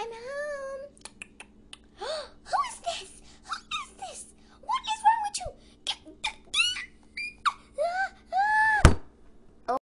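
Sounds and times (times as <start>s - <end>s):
high-pitched voice-like cries: 6.0s - 8.9s.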